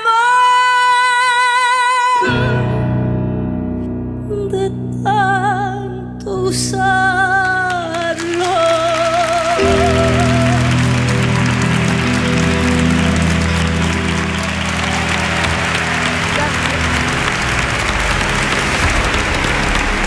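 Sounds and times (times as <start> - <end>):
audience applause: 7.4 - 20.0
accompaniment closing chord: 9.0 - 20.0.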